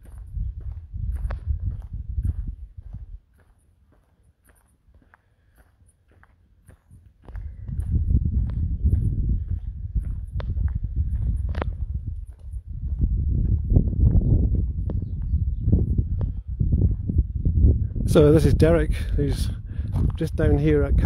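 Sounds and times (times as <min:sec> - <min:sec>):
low microphone rumble: 0:00.0 - 0:03.2, 0:07.3 - 0:21.0
footsteps on tarmac: 0:00.0 - 0:21.0.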